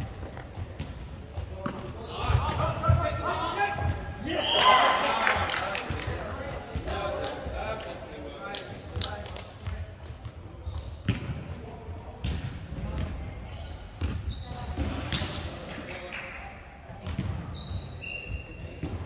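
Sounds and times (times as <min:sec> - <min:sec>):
players' voices: 0:00.2 - 0:19.0.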